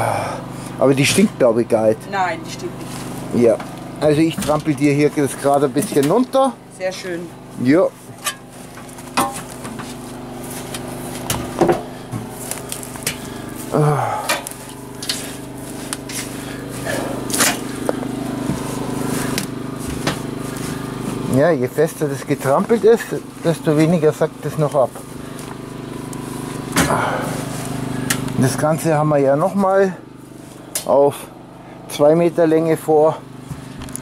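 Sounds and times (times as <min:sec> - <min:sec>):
steady low hum: 0:00.0 - 0:34.0
vehicle engine running: 0:00.0 - 0:34.0
footsteps on loose soil: 0:02.8 - 0:06.7, 0:07.3 - 0:30.7.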